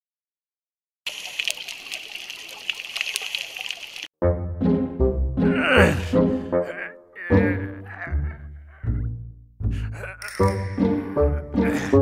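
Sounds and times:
underwater clicks and crackles: 1.1 - 4.1.

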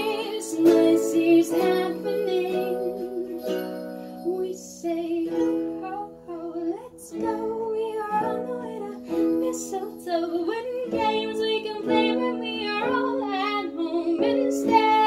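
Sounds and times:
ukulele strumming: 0.0 - 15.0
woman singing: 0.0 - 15.0.

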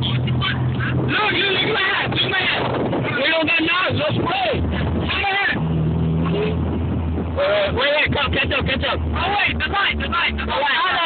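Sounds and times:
voices: 0.0 - 5.7, 7.3 - 11.0
car engines idling: 0.0 - 11.0.

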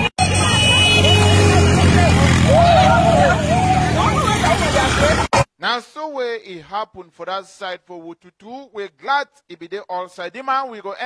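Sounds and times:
crowd shouting and celebrating: 0.0 - 5.4
motorcycle engine rumbling: 0.0 - 5.4.

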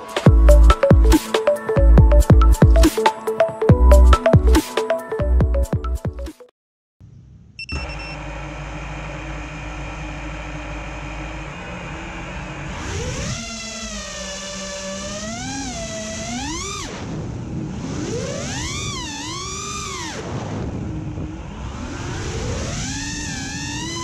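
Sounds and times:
drone motors whining: 7.6 - 24.0.

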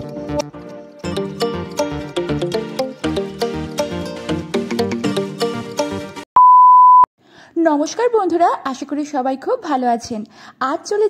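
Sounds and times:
background music with steady beat: 0.0 - 6.2
high electronic beep: 6.4 - 7.1.

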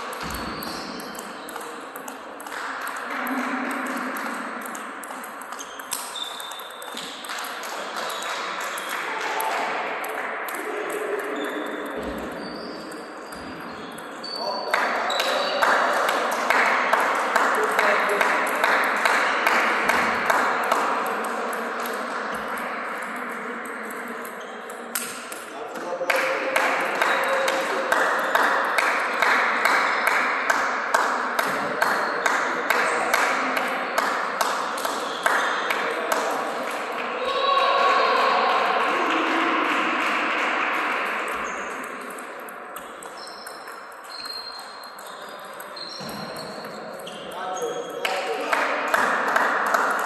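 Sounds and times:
voices in a hall: 0.0 - 50.0.

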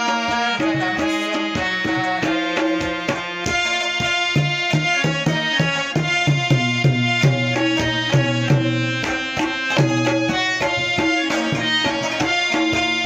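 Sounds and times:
harmonium playing: 0.0 - 13.0.

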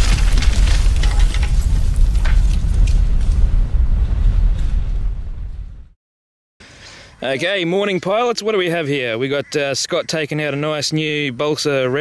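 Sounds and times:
debris breaking and clattering: 0.0 - 5.0
loud deep rumble: 0.0 - 6.0.

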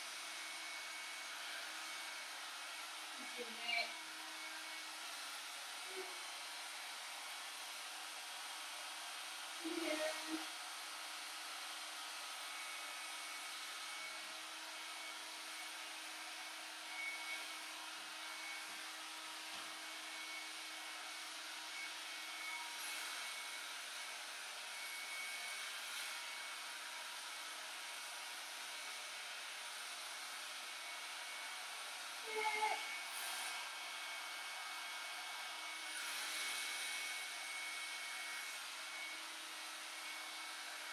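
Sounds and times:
hair dryer blowing air: 0.0 - 40.9.

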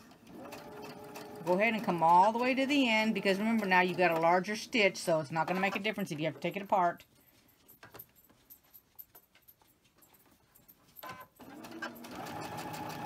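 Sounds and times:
sewing machine running: 0.2 - 4.2, 11.4 - 13.0.

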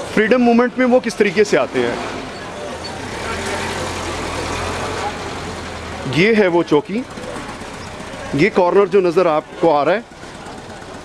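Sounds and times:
road noise: 0.0 - 11.0
car engine running at low speed: 2.9 - 11.0.

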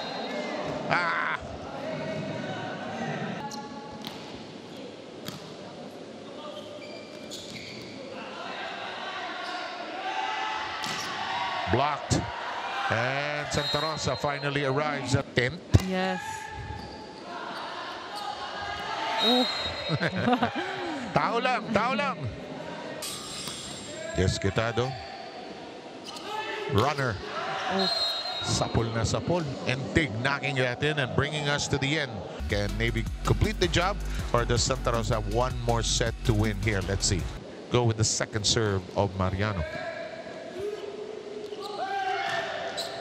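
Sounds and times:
murmur of indoor hall: 0.0 - 43.0
commentator laughing: 19.3 - 22.3.

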